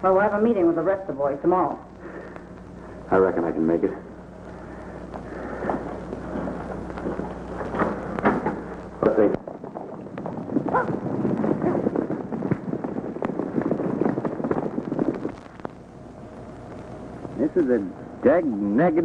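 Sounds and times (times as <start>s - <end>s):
horses galloping on dirt: 5.3s - 15.6s.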